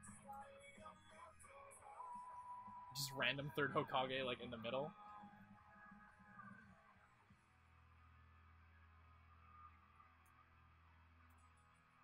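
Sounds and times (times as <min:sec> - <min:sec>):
faint low hum: 0:00.0 - 0:12.0
faint music: 0:00.0 - 0:12.0.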